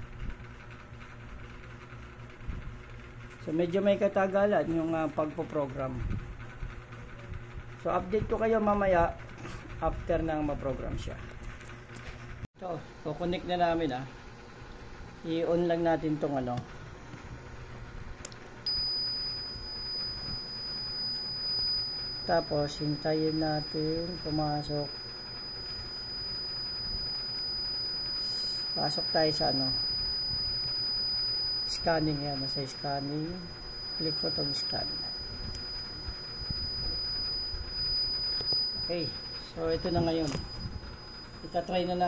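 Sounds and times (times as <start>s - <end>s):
high-pitched electronic tone: 18.7s - 42.0s.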